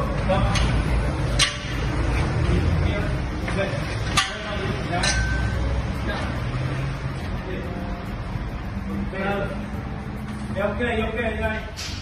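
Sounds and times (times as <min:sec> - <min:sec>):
sharp metal knocks: 0:00.6 - 0:01.9, 0:04.0 - 0:05.7.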